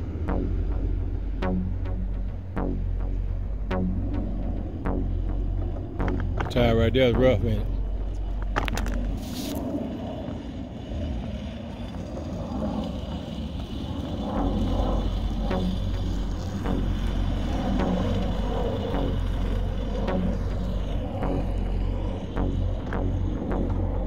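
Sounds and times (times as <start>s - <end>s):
tire sled scraping on track: 8.0s - 24.0s.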